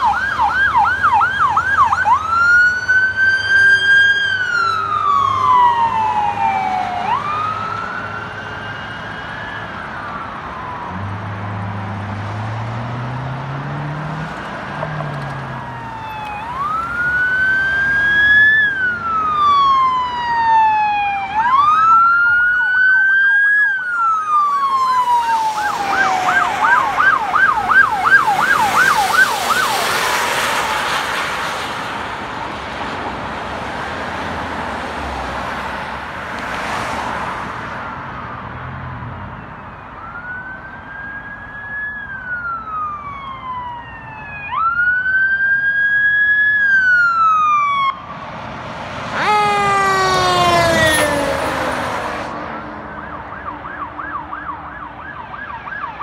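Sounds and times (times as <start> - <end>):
emergency vehicle siren: 0.0 - 56.0
road traffic rush: 0.0 - 56.0.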